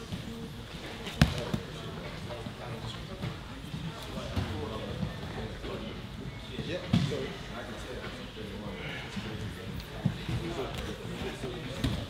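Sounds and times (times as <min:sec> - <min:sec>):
gym chatter: 0:00.0 - 0:12.0.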